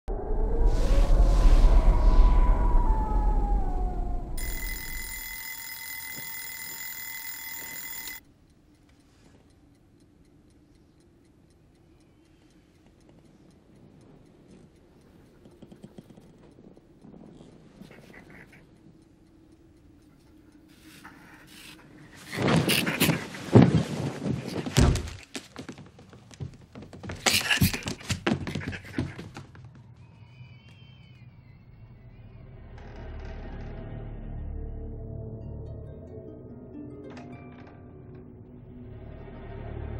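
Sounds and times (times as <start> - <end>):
whooshing sound effect: 0.3 - 4.4
alarm clock high tone: 4.4 - 8.2
clock ticking: 4.4 - 24.5.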